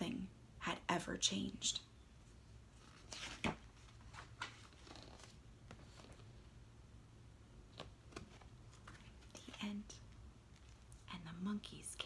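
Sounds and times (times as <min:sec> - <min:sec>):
low room hum: 0:00.0 - 0:12.0
book pages rustling: 0:02.8 - 0:06.5, 0:07.6 - 0:11.1.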